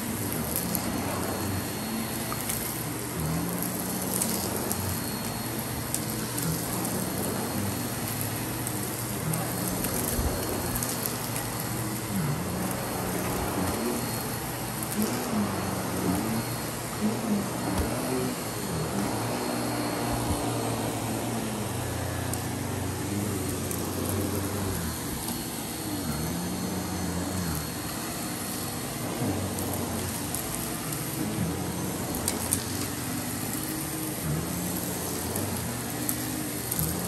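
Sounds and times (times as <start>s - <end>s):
vacuum cleaner on rug: 0.0s - 37.0s.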